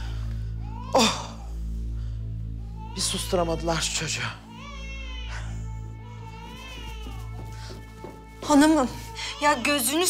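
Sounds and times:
background music: 0.0 - 10.0
baby crying: 0.6 - 1.6, 2.6 - 10.0.

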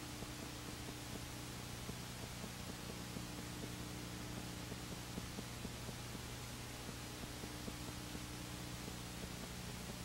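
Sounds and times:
faint irregular ticks: 0.0 - 10.0
low electrical hum: 0.0 - 10.0
tape hiss: 0.0 - 10.0.

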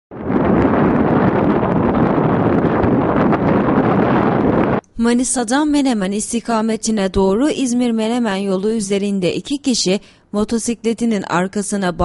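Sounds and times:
wind buffeting microphone: 0.1 - 7.7.

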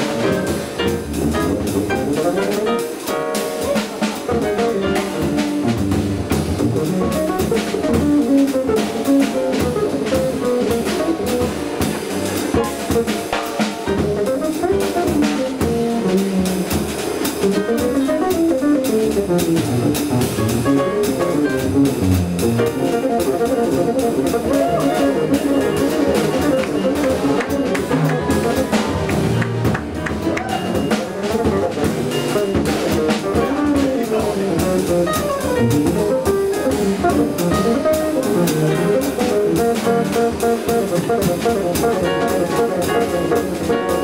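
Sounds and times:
drum kit: 0.0 - 44.0
electric bass melody: 0.0 - 44.0
piano: 0.0 - 44.0.

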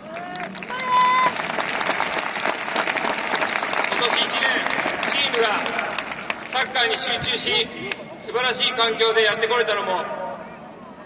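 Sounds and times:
stadium crowd applauding: 0.0 - 8.0
man's voice: 6.5 - 10.3.

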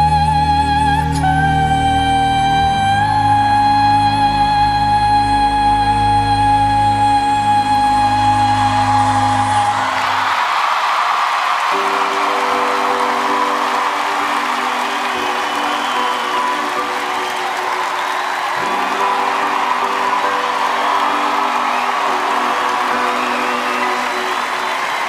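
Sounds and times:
audience applauding and cheering: 8.2 - 25.0.

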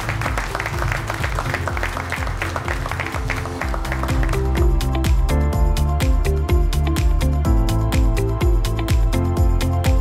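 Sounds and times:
applause: 0.0 - 5.3.

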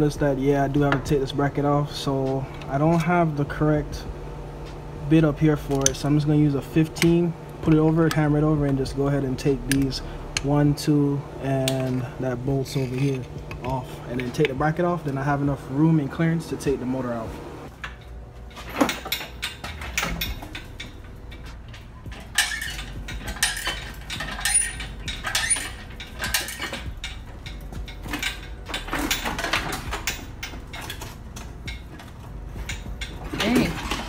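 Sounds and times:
metal tools clanking: 5.2 - 34.0.

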